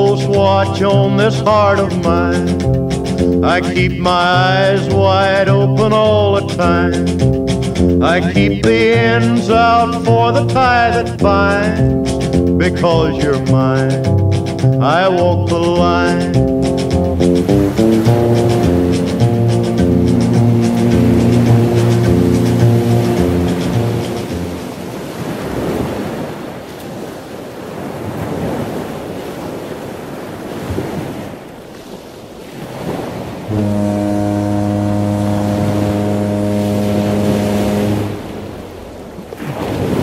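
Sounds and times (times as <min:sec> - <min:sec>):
waves washing onto beach: 0:00.0 - 0:11.9, 0:14.9 - 0:40.0
strummed guitar song: 0:00.0 - 0:24.8
low horn blast: 0:00.8 - 0:24.8, 0:33.4 - 0:39.2.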